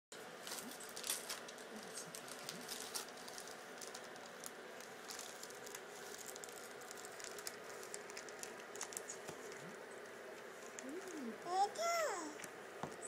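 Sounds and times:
wrapping paper crinkling: 0.3 - 11.3.

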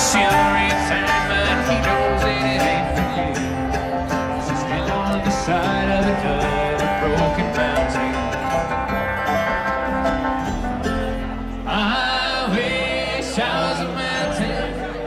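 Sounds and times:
bluegrass band playing: 0.0 - 15.0.

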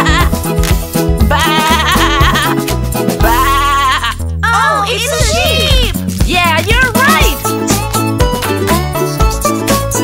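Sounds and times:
children's song backing music: 4.4 - 10.0.

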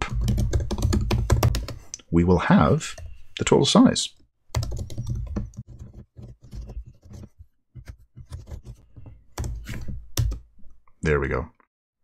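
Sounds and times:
computer keyboard typing: 0.0 - 1.8, 4.5 - 10.4.

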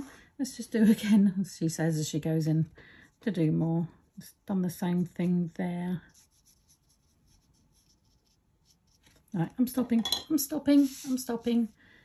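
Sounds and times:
paintbrush strokes on paper: 2.0 - 9.6, 10.5 - 11.8.

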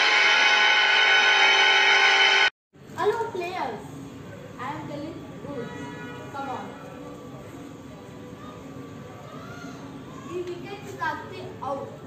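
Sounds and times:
held musical chord: 0.0 - 2.5.

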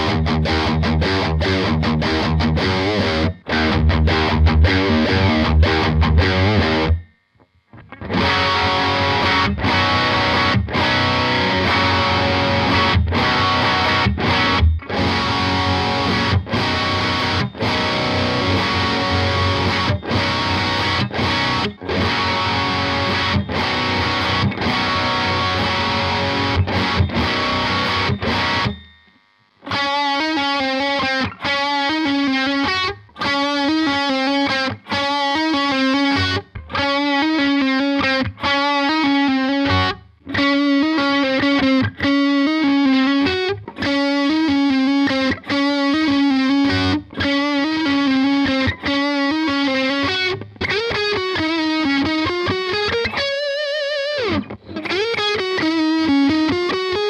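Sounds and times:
distorted electric guitar chords: 0.0 - 57.0
electric guitar riff: 0.0 - 57.0.

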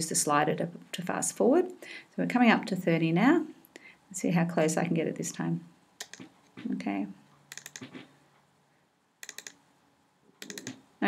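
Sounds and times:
laptop keyboard clicks: 6.0 - 6.7, 7.5 - 8.1, 9.2 - 9.6, 10.4 - 10.8.

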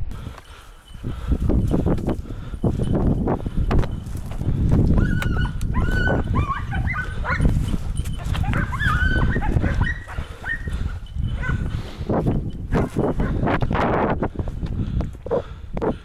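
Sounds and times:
footsteps through dry scrub: 0.2 - 14.8
hounds yelping: 4.8 - 11.8, 12.7 - 13.6.

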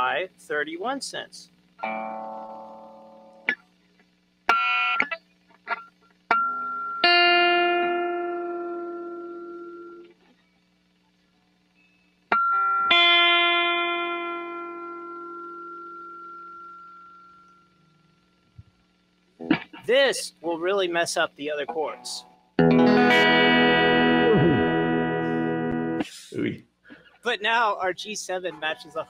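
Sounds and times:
faint low hum: 0.0 - 29.0
electric guitar notes and chords: 1.8 - 3.6, 4.5 - 10.2, 12.3 - 16.6, 19.4 - 20.0, 21.7 - 26.1.

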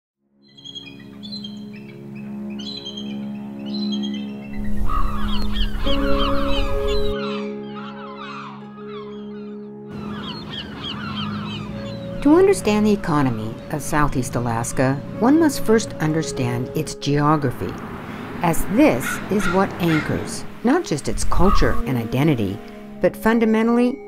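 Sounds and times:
music of held chords: 0.4 - 17.9, 18.5 - 24.0
flock of birds calling: 0.6 - 16.6, 17.9 - 22.7.

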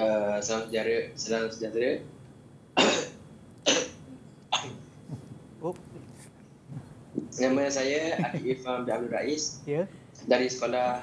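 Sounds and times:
young man coughing: 2.8 - 4.8.

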